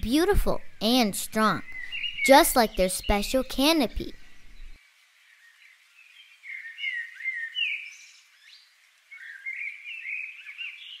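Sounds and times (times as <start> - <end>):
faint birdsong chirping: 0.0 - 11.0.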